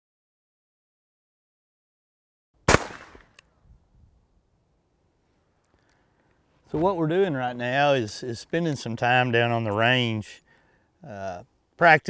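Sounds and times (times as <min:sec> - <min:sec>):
revolver gunshot with echo: 0:02.7 - 0:03.3.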